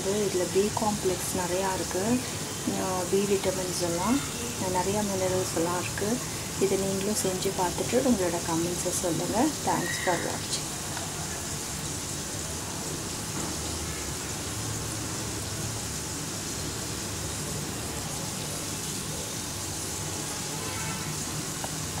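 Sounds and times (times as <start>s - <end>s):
slices sizzling in oil: 0.0s - 22.0s.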